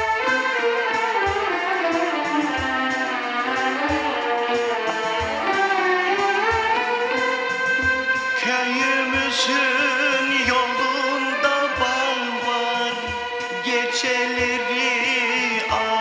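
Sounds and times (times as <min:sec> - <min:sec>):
low beat: 0:00.0 - 0:16.0
lute melody: 0:00.0 - 0:16.0.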